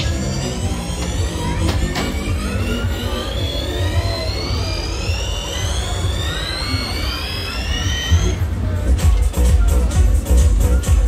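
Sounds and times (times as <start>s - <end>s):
ride whine climbing in pitch: 0.0s - 11.0s
deep bass music: 8.1s - 11.0s.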